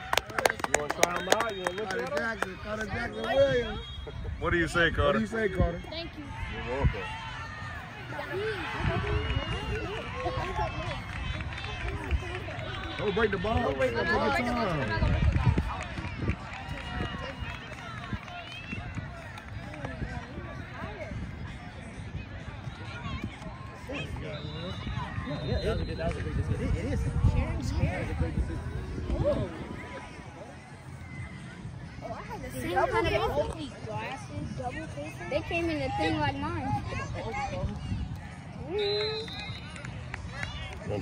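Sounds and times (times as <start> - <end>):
children chattering: 29.4 - 37.7.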